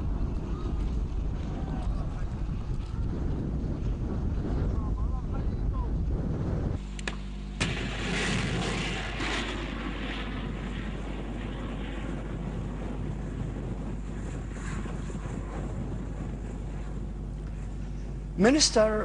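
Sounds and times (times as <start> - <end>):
missiles rushing in flight: 6.4 - 17.0.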